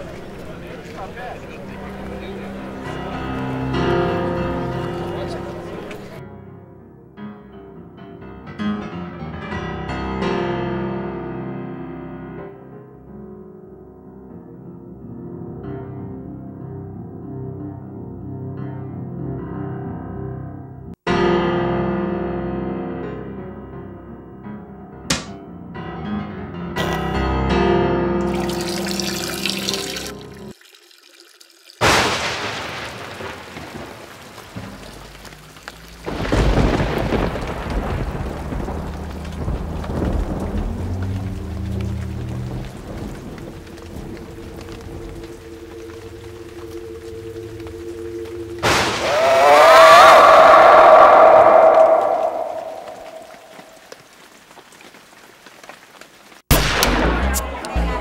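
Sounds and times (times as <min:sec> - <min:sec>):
crash dying away slowly: 0:31.8 - 0:54.0, 0:56.5 - 0:58.0
loud swelling sound: 0:47.0 - 0:53.8.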